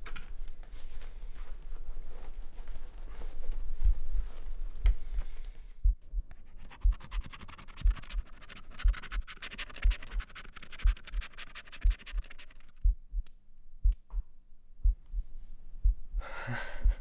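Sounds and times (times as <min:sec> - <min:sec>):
scratch card being scratched: 0:06.3 - 0:12.8.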